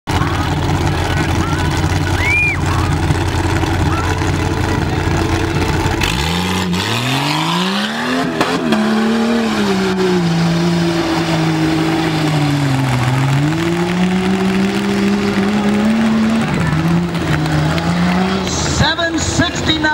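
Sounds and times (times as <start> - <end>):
car engine idling and revving: 0.0 - 19.9.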